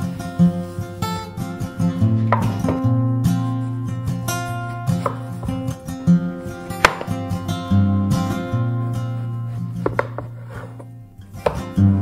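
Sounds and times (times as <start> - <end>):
acoustic guitar music: 0.0 - 12.0
knife slicing eggplant: 6.7 - 7.2.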